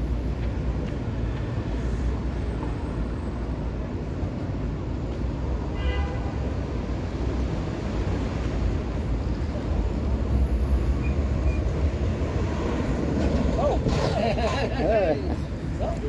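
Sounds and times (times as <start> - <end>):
traffic rumble: 0.0 - 16.0
people's voices: 13.5 - 16.0.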